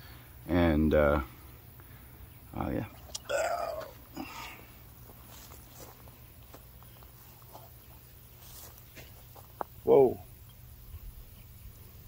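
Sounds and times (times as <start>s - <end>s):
low steady hum: 0.0s - 12.0s
footsteps in grass: 3.8s - 9.9s.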